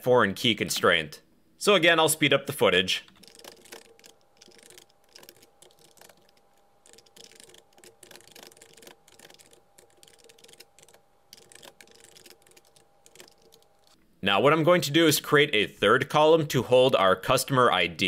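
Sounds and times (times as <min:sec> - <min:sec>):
computer keyboard typing: 0:03.1 - 0:14.0.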